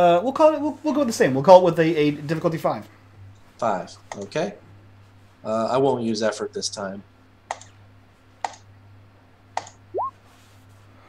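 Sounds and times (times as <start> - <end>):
sharp computer clicks: 7.5 - 7.8, 9.6 - 10.1.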